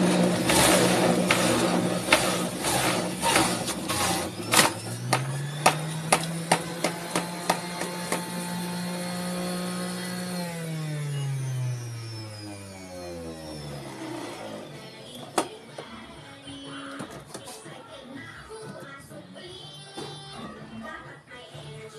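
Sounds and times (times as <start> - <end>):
juicer motor humming: 0.0 - 15.5
fruit knocking against spinning basket: 2.1 - 8.4.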